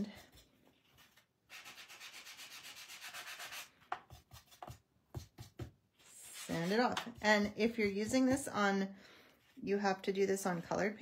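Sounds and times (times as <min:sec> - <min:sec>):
sanding block scraping cardstock: 0:01.5 - 0:05.6.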